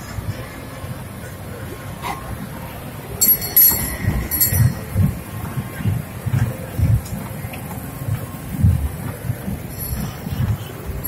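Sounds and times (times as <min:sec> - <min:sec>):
ride train rumbling on track: 0:00.0 - 0:11.0
high-pitched ringing bursts: 0:03.2 - 0:05.0.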